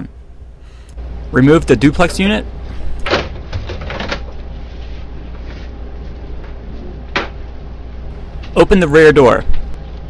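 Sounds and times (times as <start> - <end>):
printer low hum: 0.1 - 10.0.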